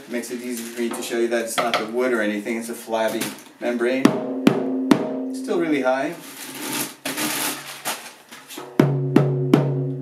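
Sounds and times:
rustling handling noise: 0:00.0 - 0:03.6, 0:05.9 - 0:08.7
small drum hits: 0:04.0 - 0:05.4, 0:08.6 - 0:10.0.

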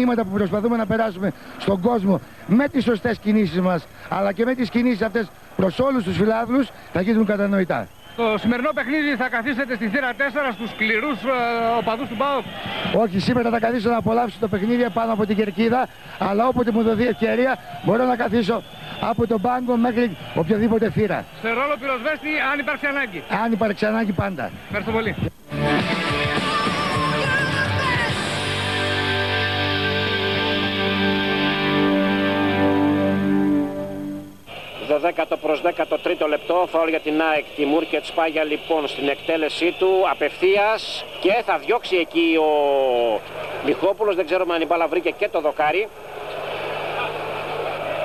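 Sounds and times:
stadium crowd voices: 0:00.0 - 0:48.0
guitar-led rock music: 0:25.4 - 0:34.3.

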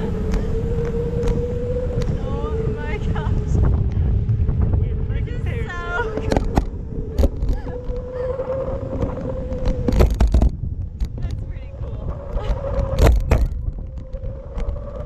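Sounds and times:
steady hum: 0:00.0 - 0:15.0
wind buffeting microphone: 0:00.0 - 0:15.0.

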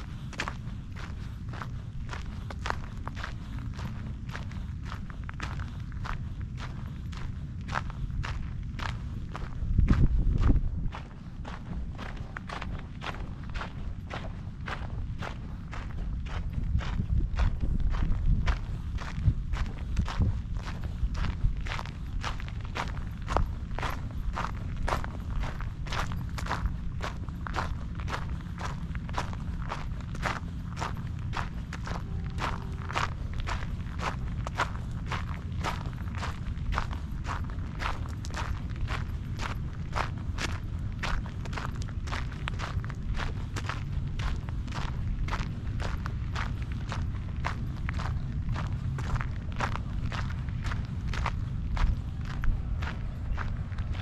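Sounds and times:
footsteps on gravel: 0:00.0 - 0:54.0
low rumble: 0:00.0 - 0:54.0.

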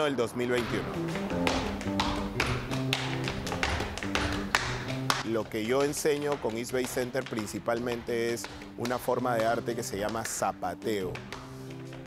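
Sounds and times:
guitar accompaniment: 0:00.6 - 0:05.3
shoe strikes on stage floor: 0:00.6 - 0:12.0.

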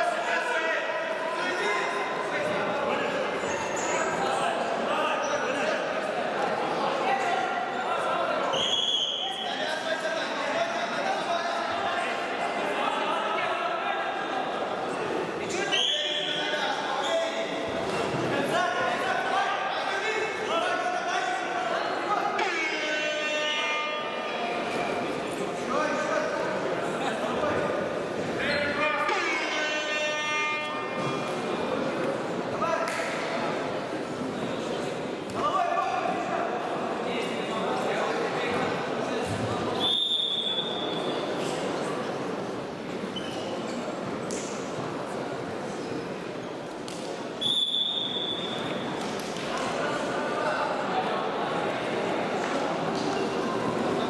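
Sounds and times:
voices echoing in sports hall: 0:00.0 - 0:54.0
high-pitched whistle blast: 0:47.4 - 0:48.6.

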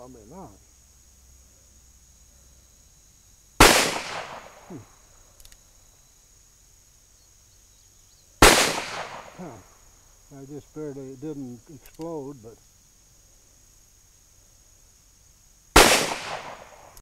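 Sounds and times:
revolver shots with echo: 0:03.6 - 0:04.6, 0:15.8 - 0:16.7.

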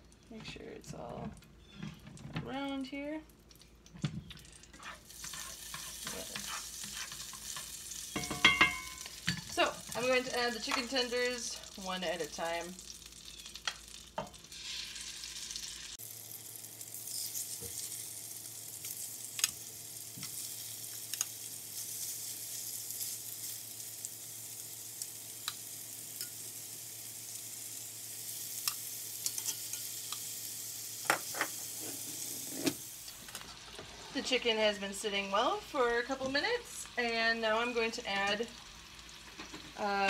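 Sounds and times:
meat sizzling in a skillet: 0:04.7 - 0:40.0.

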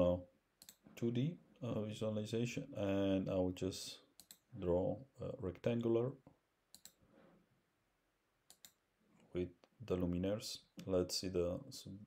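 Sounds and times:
computer mouse clicking: 0:00.6 - 0:00.8, 0:04.2 - 0:04.5, 0:06.7 - 0:07.0, 0:08.5 - 0:08.8.

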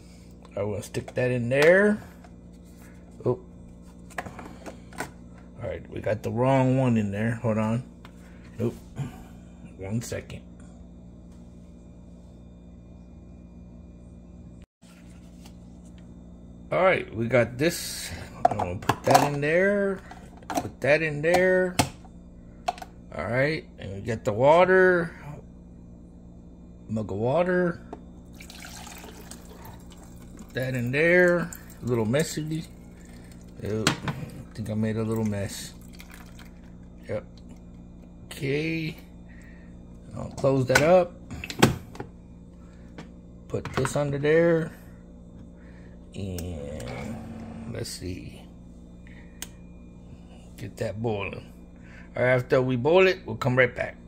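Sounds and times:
low electrical hum: 0:00.0 - 0:54.0.

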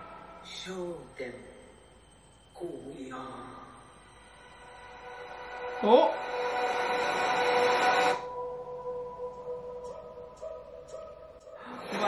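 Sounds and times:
faint sustained tone: 0:00.0 - 0:12.0
held chord of steady tones: 0:00.0 - 0:12.0
rushing swell: 0:04.1 - 0:08.6.

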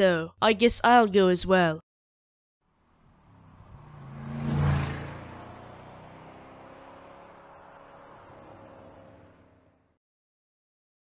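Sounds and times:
vehicle engine sound effect: 0:02.7 - 0:09.8.

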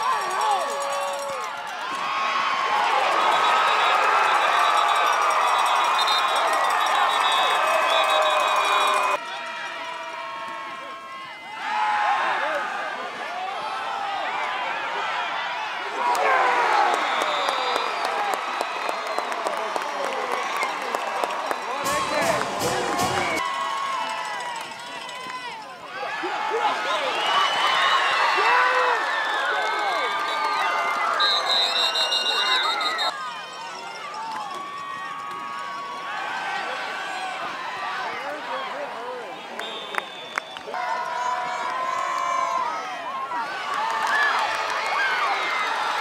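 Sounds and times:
crowd cheering and shouting: 0:00.0 - 0:46.0.

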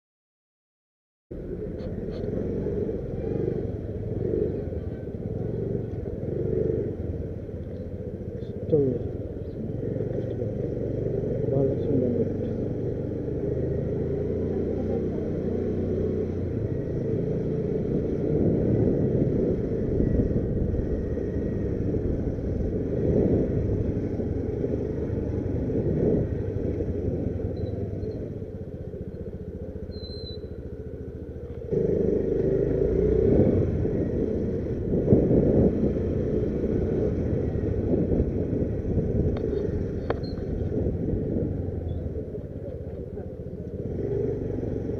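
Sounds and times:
motorcycle engine running: 0:01.3 - 0:44.9.

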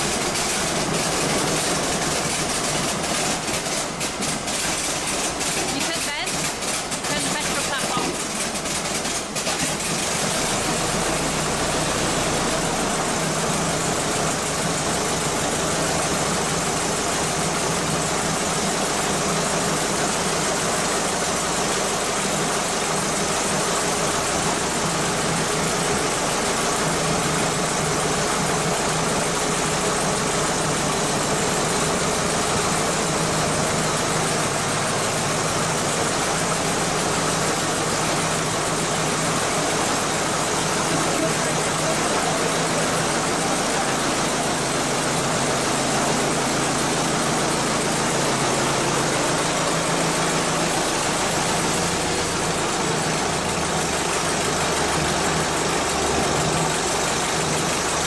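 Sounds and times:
fire engine idling: 0:00.0 - 0:58.0.

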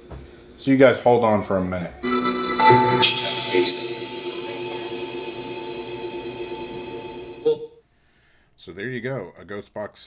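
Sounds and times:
echoing held tones: 0:02.0 - 0:07.7.

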